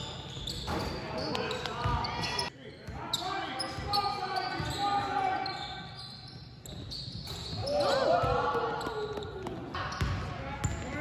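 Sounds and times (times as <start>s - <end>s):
sneakers squeaking: 0.0s - 11.0s.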